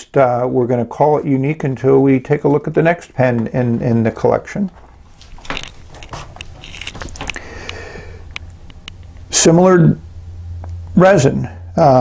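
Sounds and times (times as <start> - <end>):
soft rustle: 1.2 - 7.6.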